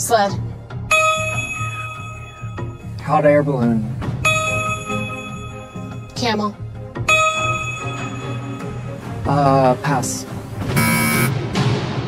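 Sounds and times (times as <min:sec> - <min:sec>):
pulsing background music: 0:00.0 - 0:12.0
bell-like ding: 0:00.9 - 0:03.0, 0:04.3 - 0:06.2, 0:07.1 - 0:08.9.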